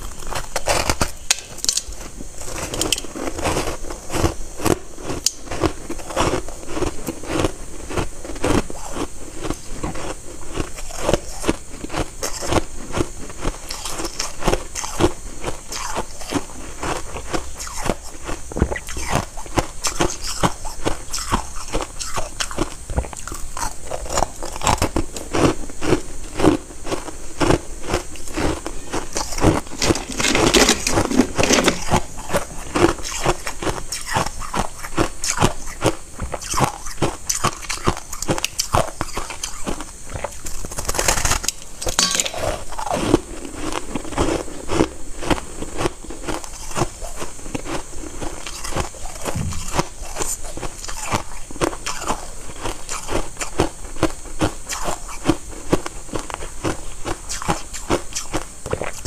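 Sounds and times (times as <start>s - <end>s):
chewing crunchy shaved ice: 0.0s - 59.0s.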